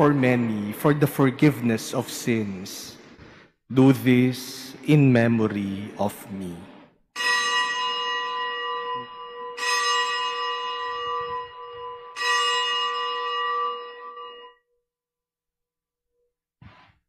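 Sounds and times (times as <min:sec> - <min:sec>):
bell ringing: 0:07.2 - 0:14.6.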